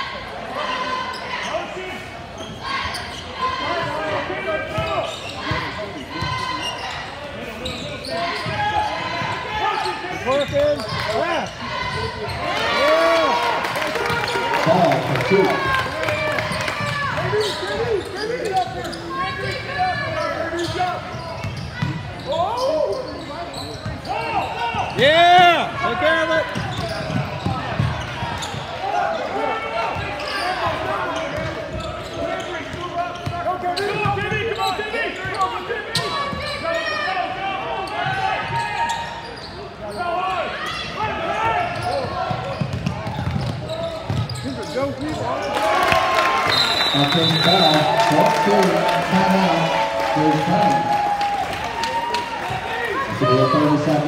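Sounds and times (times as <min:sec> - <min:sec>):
shouts and chatter: 0:00.0 - 0:54.0.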